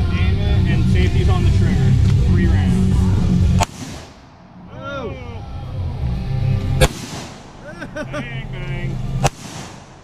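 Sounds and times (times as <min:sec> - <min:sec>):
pistol shot: 0:03.6 - 0:04.2, 0:06.8 - 0:07.6, 0:09.2 - 0:10.0.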